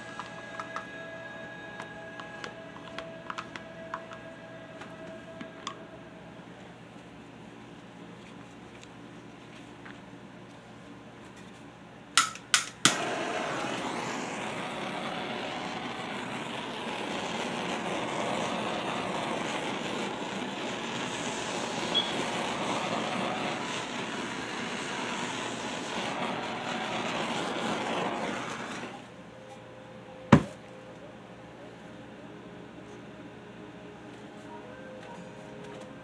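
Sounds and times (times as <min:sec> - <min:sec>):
gas torch flame hissing: 0:12.8 - 0:29.1.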